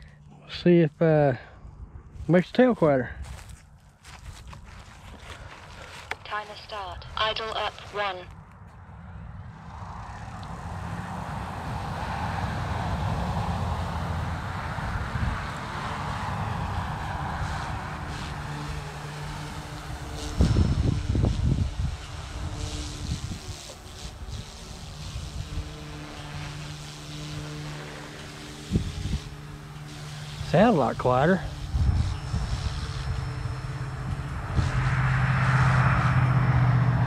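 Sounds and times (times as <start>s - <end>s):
wind rumbling on microphone: 8.7s - 37.0s
rc helicopter motor and rotor whine: 9.0s - 37.0s.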